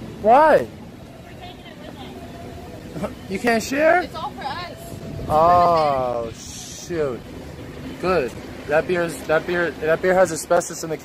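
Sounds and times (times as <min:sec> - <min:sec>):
low rumble of street noise: 0:00.0 - 0:11.0.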